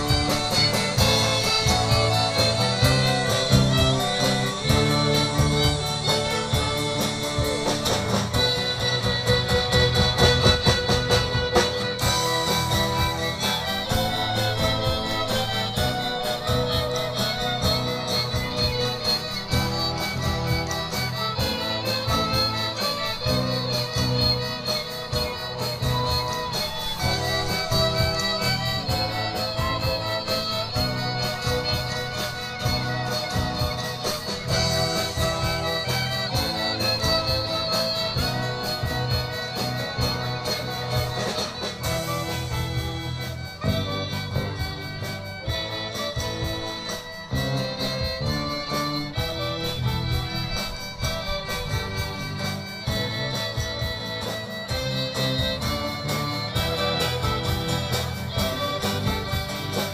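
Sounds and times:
acoustic and electric guitars: 0.0s - 59.9s
bowed violins and cello: 0.0s - 59.9s
drums: 0.0s - 59.9s.

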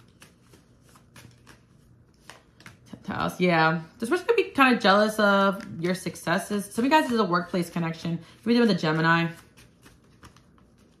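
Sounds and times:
cards being shuffled: 0.0s - 3.0s, 6.8s - 11.0s.

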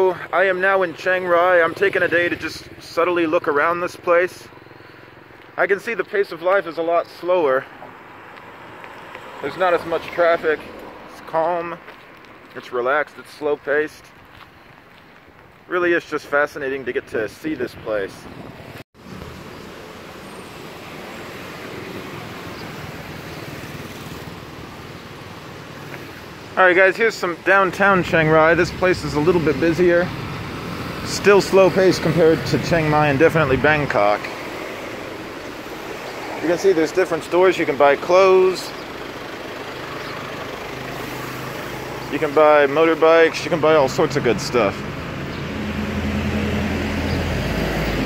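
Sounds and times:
cars and motorbikes passing: 0.0s - 48.0s
road noise: 0.0s - 48.0s
vehicle engines humming: 0.0s - 48.0s.

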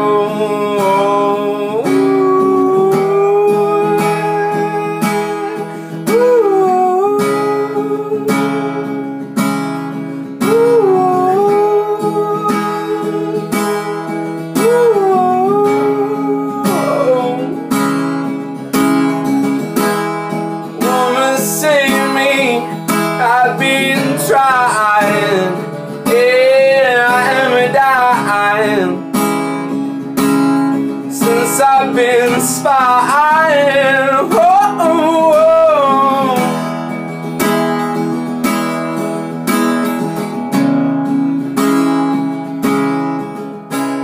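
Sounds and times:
man singing wordless notes: 0.0s - 9.1s, 10.4s - 13.8s, 14.5s - 18.0s, 20.6s - 29.3s, 30.8s - 36.8s
acoustic guitar strumming: 0.0s - 44.0s.

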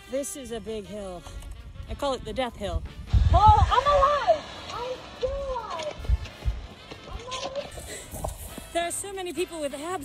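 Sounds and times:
low microphone bumps: 1.7s - 9.1s.

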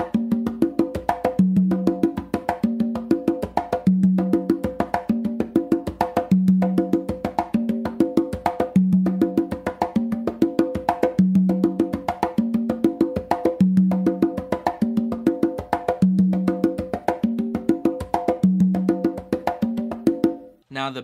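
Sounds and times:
congas played by hand: 0.0s - 20.6s.

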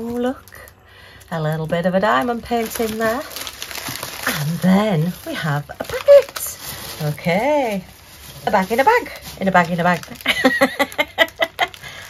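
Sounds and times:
woman laughing: 10.2s - 12.0s.

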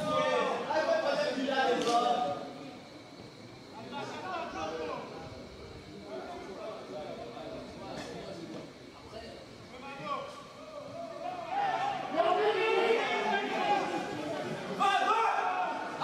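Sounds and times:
low chatter: 0.0s - 16.0s
people calling and shouting: 0.0s - 16.0s.

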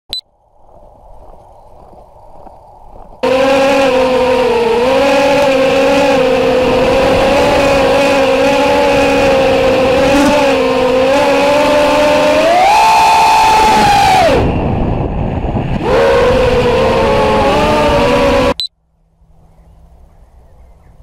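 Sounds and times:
quadcopter propellers whining: 3.2s - 18.7s.

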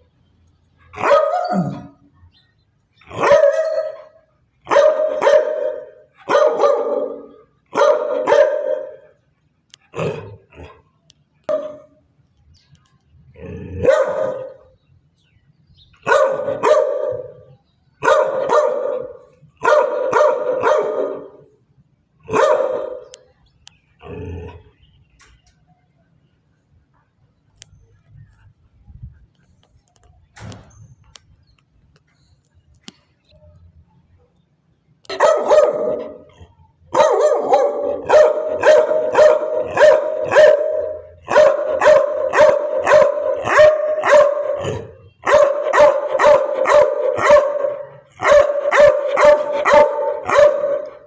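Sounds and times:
dog barking: 0.9s - 2.0s, 3.1s - 9.1s, 11.4s - 12.0s, 13.8s - 14.7s, 16.0s - 21.4s, 22.3s - 23.2s, 35.1s - 51.0s.

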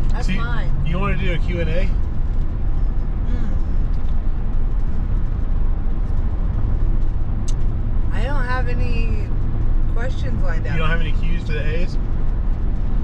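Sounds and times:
vehicle engine and tyre rumble: 0.0s - 13.0s.

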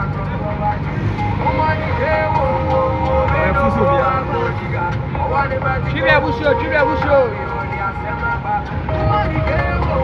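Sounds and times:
car engine and road rumble: 0.0s - 10.0s
music: 0.0s - 10.0s
voices: 0.0s - 10.0s.

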